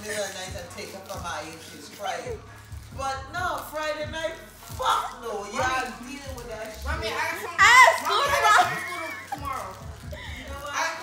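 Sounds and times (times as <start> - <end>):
children's faint chatter: 4.8 - 11.0.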